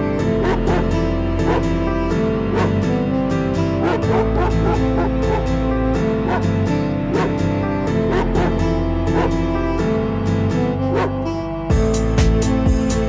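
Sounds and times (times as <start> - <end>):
music with steady beat and chords: 0.0 - 13.0.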